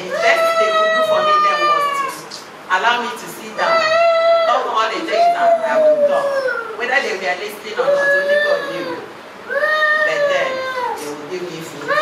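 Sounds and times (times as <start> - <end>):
woman wailing into a microphone: 3.6 - 6.8.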